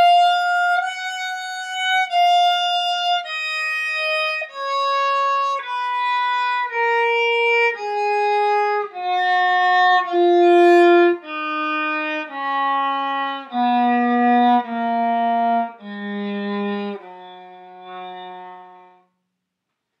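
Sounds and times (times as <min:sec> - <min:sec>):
viola playing descending scale: 0:00.0 - 0:19.0.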